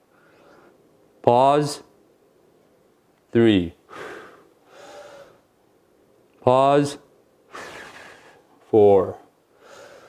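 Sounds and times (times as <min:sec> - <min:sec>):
man breathing hard: 0:03.9 - 0:05.5, 0:09.5 - 0:10.0.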